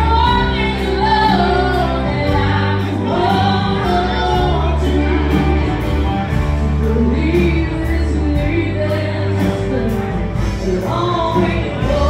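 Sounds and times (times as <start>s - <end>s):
live country band: 0.0s - 12.0s
woman singing: 0.0s - 12.0s.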